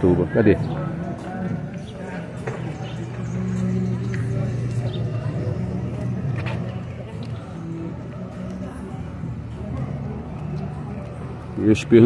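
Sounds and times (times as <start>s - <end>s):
faint street noise: 0.0s - 12.0s
low motor hum: 0.8s - 12.0s.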